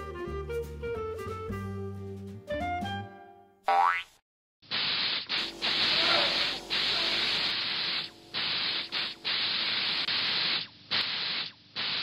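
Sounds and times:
jazz music: 0.0s - 3.3s
cartoon boing: 3.7s - 4.1s
paint spray gun hiss: 4.7s - 12.0s.

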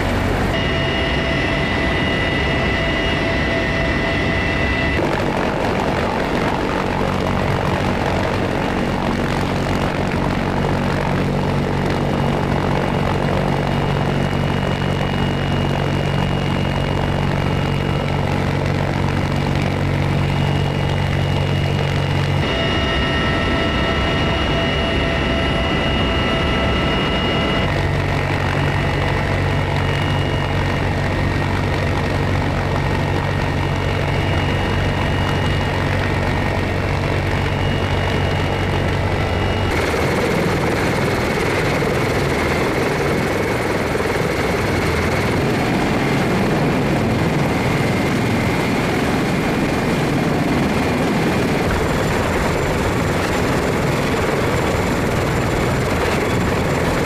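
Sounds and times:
helicopter rotor hum: 0.0s - 57.0s
turbine whine: 0.0s - 57.0s.

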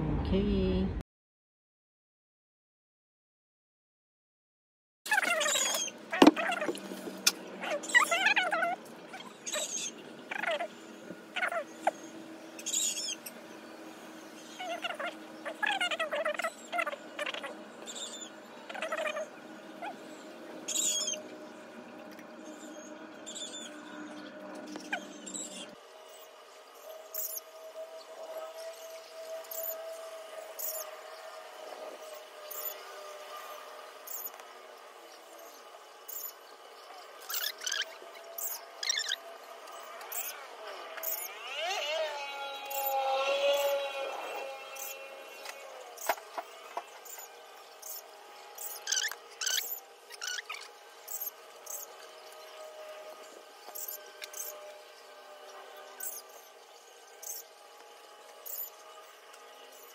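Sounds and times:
birds chirping: 5.1s - 59.9s.

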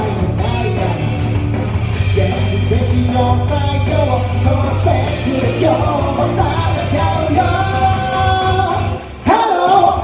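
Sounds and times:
man singing into microphone: 0.0s - 1.2s, 2.1s - 10.0s
loud amplified rock music: 0.0s - 10.0s.

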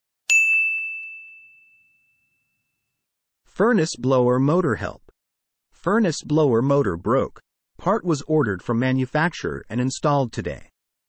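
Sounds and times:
bright chime ding: 0.3s - 2.8s.

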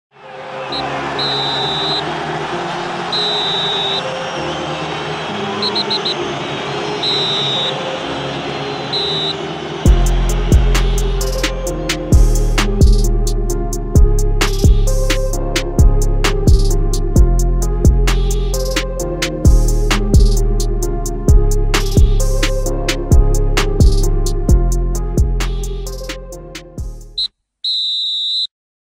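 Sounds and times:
stadium crowd noise: 0.1s - 12.1s
whistle blasts: 0.6s - 2.1s, 3.1s - 10.4s, 27.2s - 28.5s
short high electronic beep: 0.7s - 2.0s
long steady high beep: 0.8s - 2.0s, 7.0s - 7.8s, 8.9s - 9.4s, 27.2s - 28.5s
background music with a beat: 9.8s - 27.2s.

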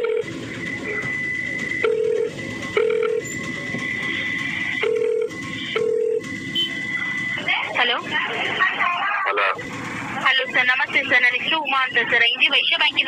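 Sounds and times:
telephone ringing tone beeps: 0.0s - 3.4s, 4.7s - 7.4s.

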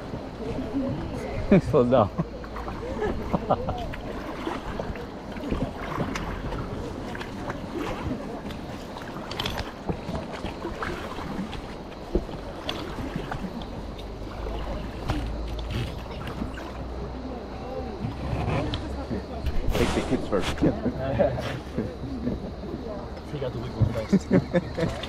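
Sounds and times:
water around a raft: 0.0s - 25.0s.

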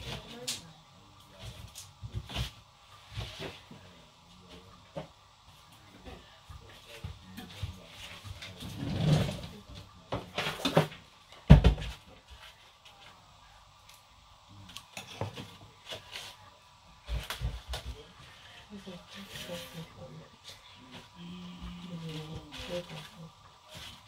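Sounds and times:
background voices: 0.0s - 10.9s, 14.4s - 24.0s.

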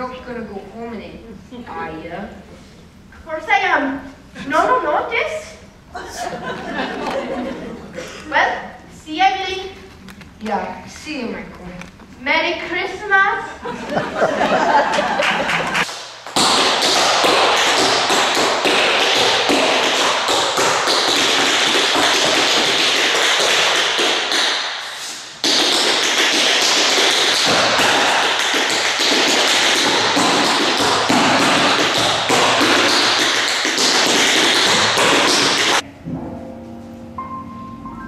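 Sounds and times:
tap shoes on wooden floor: 16.2s - 24.6s, 25.4s - 35.8s.

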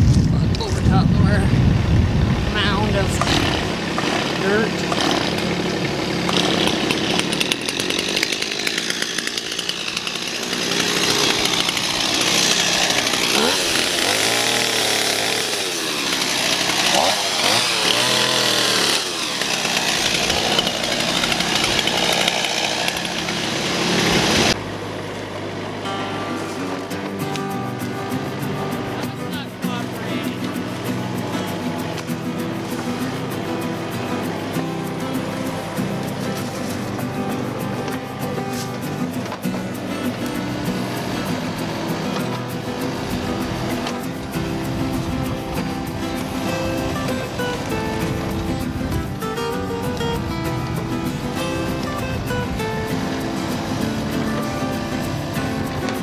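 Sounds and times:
excavator diesel engine running: 0.0s - 56.0s
chainsaw revving: 2.2s - 56.0s.

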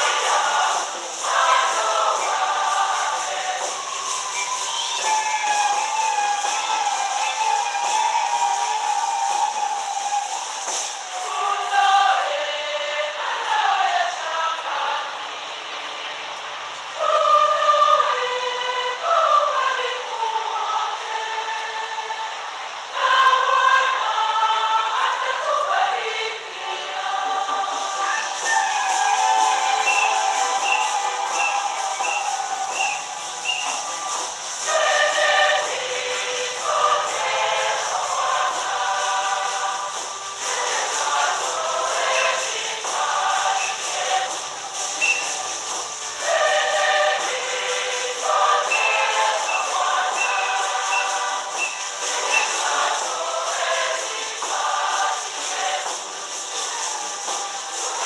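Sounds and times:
choir singing sacred song: 0.0s - 58.0s.

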